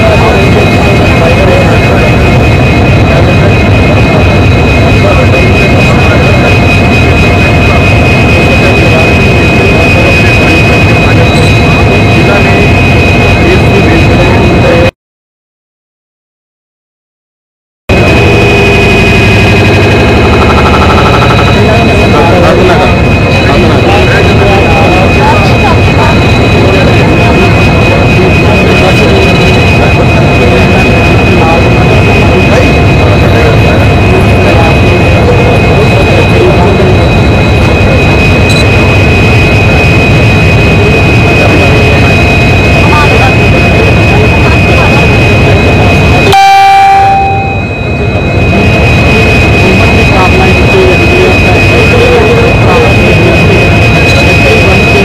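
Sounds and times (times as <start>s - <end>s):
diesel locomotive engine drone: 0.0s - 14.9s, 17.9s - 55.0s
high whine: 0.0s - 14.9s, 17.9s - 55.0s
people's voices: 0.0s - 14.9s, 17.9s - 55.0s.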